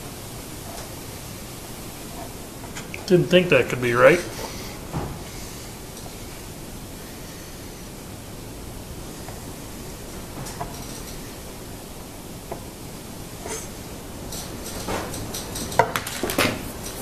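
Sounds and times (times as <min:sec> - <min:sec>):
steady hiss: 0:00.0 - 0:17.0.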